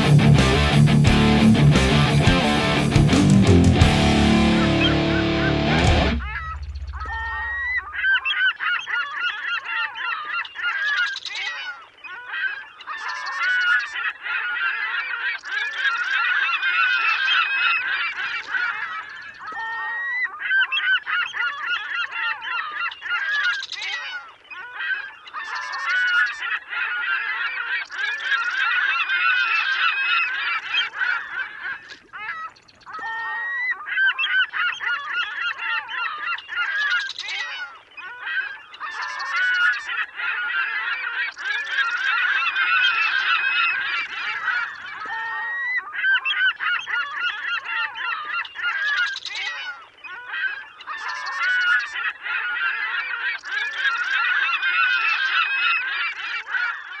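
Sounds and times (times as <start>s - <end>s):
flock of birds honking: 3.8s - 57.0s.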